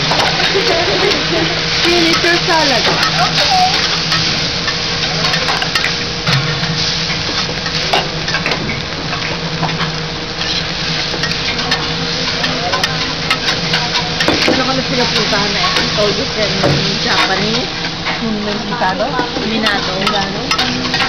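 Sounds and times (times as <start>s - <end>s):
rice sizzling on a griddle: 0.0s - 21.0s
spatulas clicking and scraping griddle: 0.0s - 21.0s.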